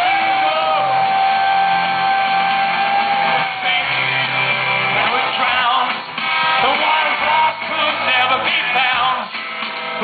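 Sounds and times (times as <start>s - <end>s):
punk rock band playing live: 0.0s - 10.0s.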